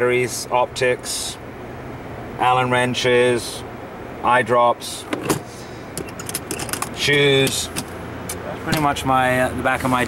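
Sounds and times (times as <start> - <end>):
metal latch clicking and rattling: 6.0 - 7.9.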